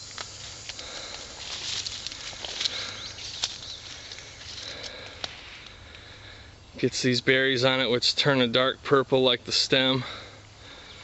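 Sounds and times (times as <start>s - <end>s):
plants rustling underfoot: 0.0s - 6.0s
insect trill: 0.0s - 11.0s.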